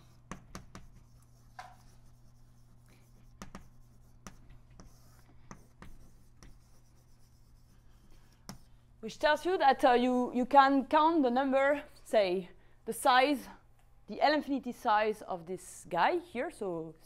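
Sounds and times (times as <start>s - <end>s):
chalk tapping and scratching on board: 0.0s - 8.7s
low electrical hum: 0.0s - 17.0s.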